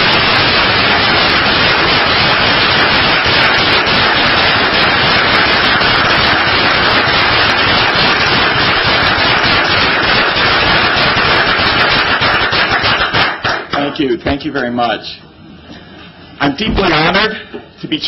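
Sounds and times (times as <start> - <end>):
audience applauding: 0.0 - 13.9.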